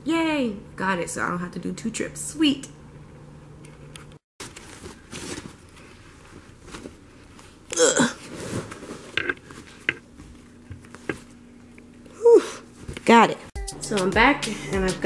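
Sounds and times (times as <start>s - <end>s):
plastic bag rustling: 4.4s - 7.6s.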